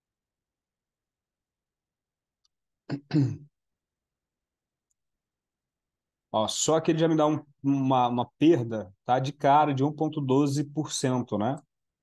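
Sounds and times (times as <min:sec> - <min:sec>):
man clearing his throat: 0:02.9 - 0:03.5.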